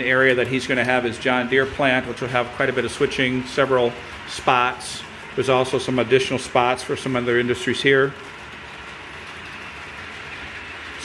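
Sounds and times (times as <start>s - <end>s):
model train wheels rolling on rails: 0.0s - 11.0s.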